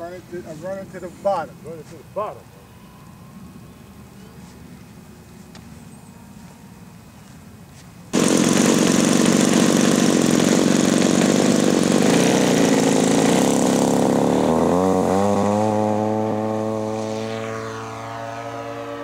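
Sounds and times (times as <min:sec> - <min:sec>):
model plane engine running: 0:08.2 - 0:18.6.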